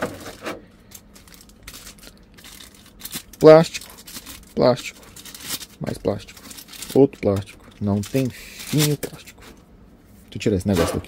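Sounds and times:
plastic wrap crinkling: 0.2s - 9.5s.

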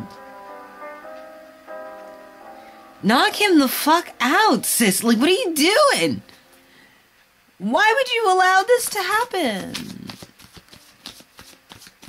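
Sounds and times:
cards being shuffled: 8.8s - 12.0s.

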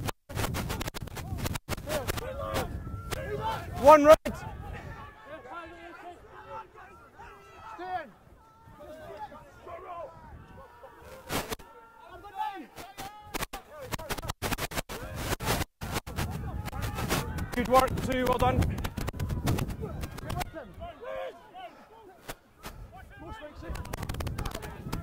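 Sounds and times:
voices shouting and calling: 1.7s - 14.2s, 14.9s - 25.0s.

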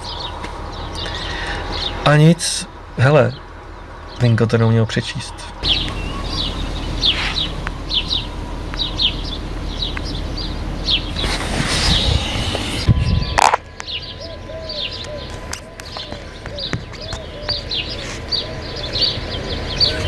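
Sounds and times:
low rumble: 5.5s - 19.8s
small bird chirping: 5.6s - 20.0s.

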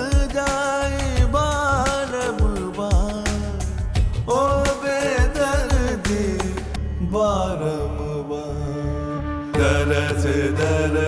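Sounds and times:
steady drone and bass: 0.9s - 1.9s, 3.2s - 4.7s, 5.4s - 11.0s.

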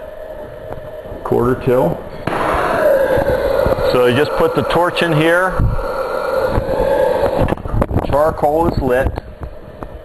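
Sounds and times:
fan humming: 0.0s - 10.0s
gas torch flame hissing: 0.0s - 10.0s.

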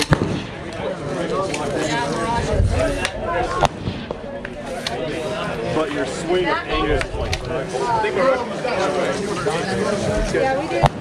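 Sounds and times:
rifle shot: 0.0s - 0.6s
low talk: 0.0s - 11.0s.

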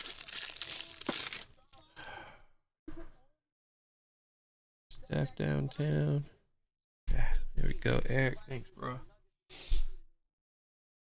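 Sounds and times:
foil wrapper crinkling and tearing: 0.0s - 1.7s.

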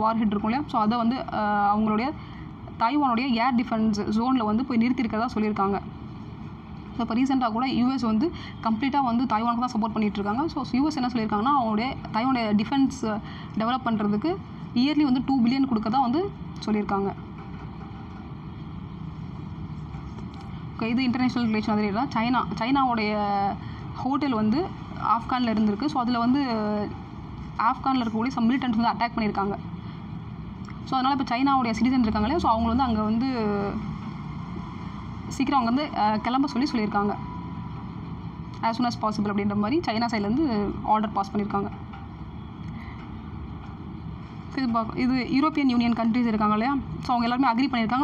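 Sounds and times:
faint hum: 0.0s - 48.0s
low background rumble with hiss: 0.0s - 48.0s.

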